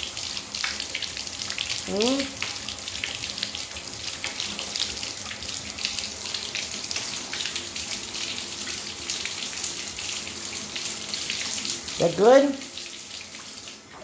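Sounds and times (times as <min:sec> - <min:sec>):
bathtub faucet running: 0:00.0 - 0:14.0.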